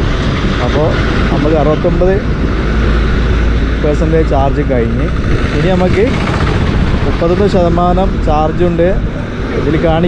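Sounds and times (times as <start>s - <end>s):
wind buffeting microphone: 0.0s - 10.0s
man talking: 0.6s - 2.3s, 3.8s - 6.2s, 7.0s - 10.0s.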